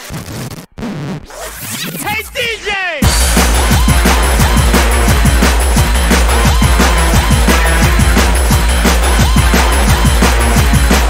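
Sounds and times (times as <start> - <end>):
sampled voice: 2.0 - 4.9.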